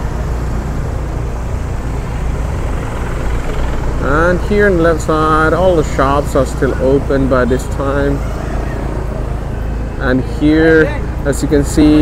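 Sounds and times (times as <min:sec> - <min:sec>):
car engine droning: 0:00.0 - 0:12.0
faint street noise: 0:00.0 - 0:12.0.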